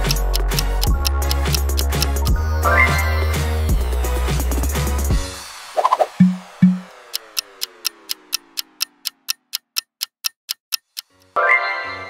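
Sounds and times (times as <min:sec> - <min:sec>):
clock ticking: 0:00.0 - 0:03.1, 0:05.8 - 0:11.4
low tone sliding downward: 0:05.8 - 0:09.3.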